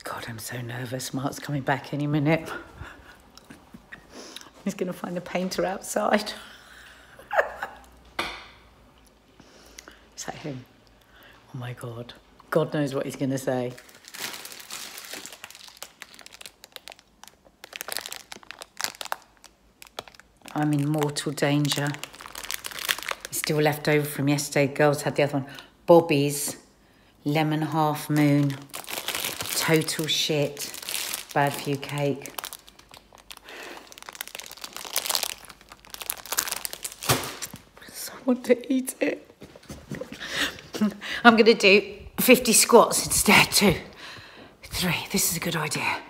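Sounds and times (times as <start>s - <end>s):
plastic bag crinkling: 13.5s - 23.9s, 27.9s - 38.0s.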